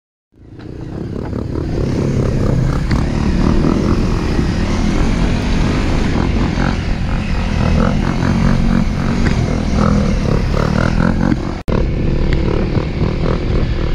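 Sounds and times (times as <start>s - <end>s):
dirt bike engine running: 0.4s - 13.9s.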